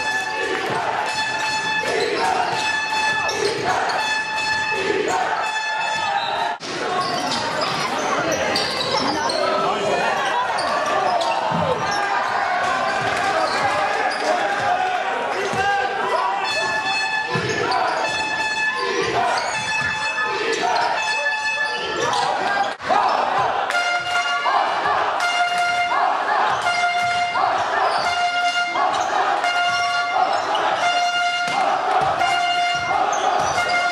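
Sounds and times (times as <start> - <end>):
crowd and player voices: 0.0 - 33.9
shoe squeaks: 1.0 - 9.6, 16.2 - 22.7, 32.2 - 33.9
basketball bouncing on court: 31.4 - 33.9.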